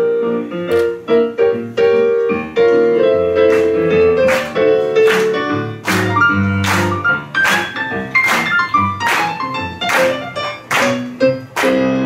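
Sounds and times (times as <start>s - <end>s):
digital piano playing jazz chords: 0.0s - 12.0s.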